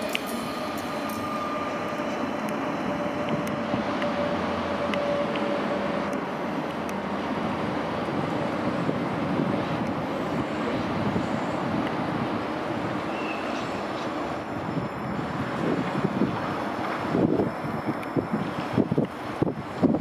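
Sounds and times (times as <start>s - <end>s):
train rumbling over rails: 0.0s - 20.0s
wind on microphone: 1.9s - 20.0s.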